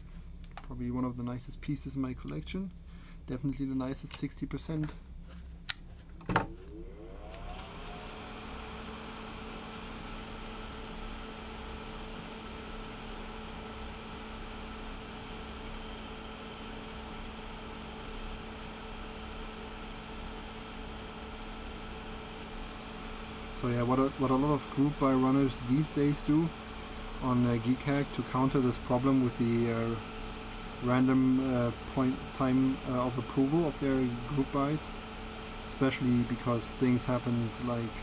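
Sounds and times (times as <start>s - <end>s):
small fan whirring: 0.0s - 38.0s.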